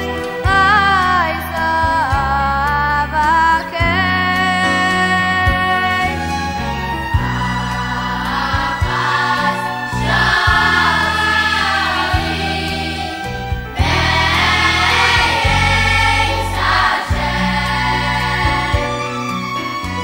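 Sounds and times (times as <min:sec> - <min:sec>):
instrumental backing with bass line: 0:00.0 - 0:20.0
boys' choir singing: 0:07.6 - 0:19.3.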